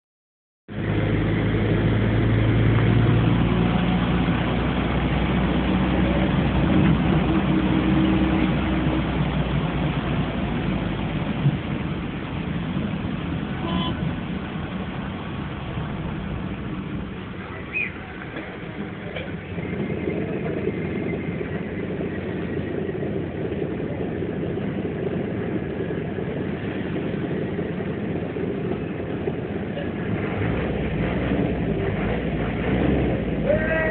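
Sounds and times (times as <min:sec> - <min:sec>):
bus engine drone: 0:00.7 - 0:33.9
road noise: 0:00.7 - 0:33.9.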